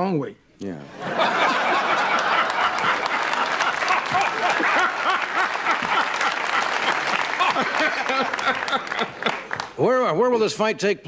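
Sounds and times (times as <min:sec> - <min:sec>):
audience applauding: 0:01.2 - 0:09.8.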